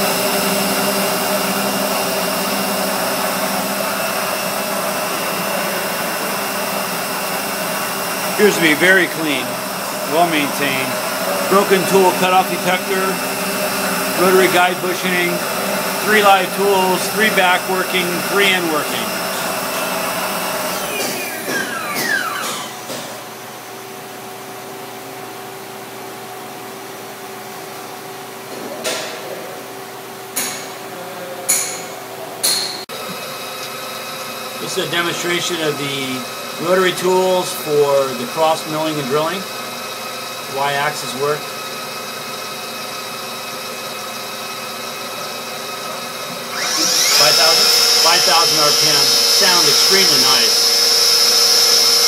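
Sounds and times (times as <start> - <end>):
motor whine spinning down: 0.0 - 22.9, 44.1 - 52.0
lathe machine hum: 0.0 - 23.6, 32.9 - 52.0.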